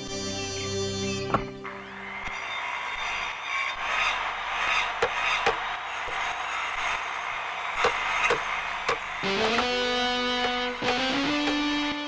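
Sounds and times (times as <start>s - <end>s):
hammer blows on nails: 2.9s - 11.9s
sharp knocks: 7.8s - 9.8s.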